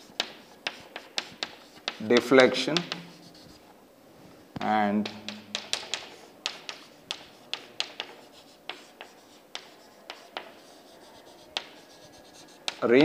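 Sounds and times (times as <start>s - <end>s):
chalk tapping on chalkboard: 0.0s - 3.6s, 4.6s - 12.9s
chalk scratching: 0.0s - 3.7s, 5.0s - 13.0s.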